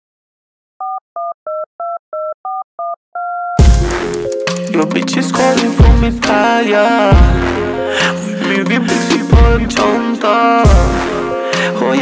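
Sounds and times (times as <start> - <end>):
telephone dialing tones: 0.8 - 3.6
hip-hop beat with heavy bass: 3.6 - 12.0.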